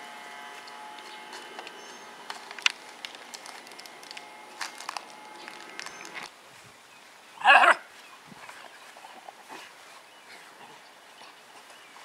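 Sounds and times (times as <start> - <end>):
faint outdoor background noise: 0.0 - 12.0
dog barking: 7.4 - 7.8.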